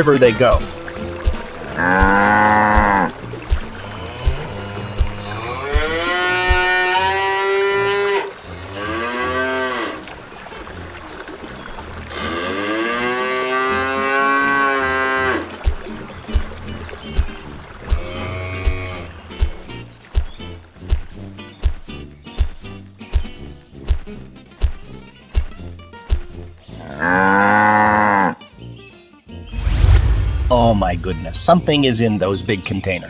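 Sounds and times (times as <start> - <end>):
cows mooing: 0.6 - 10.1, 12.0 - 15.5, 17.9 - 19.2, 26.8 - 28.4
regular low thumping: 29.5 - 31.7.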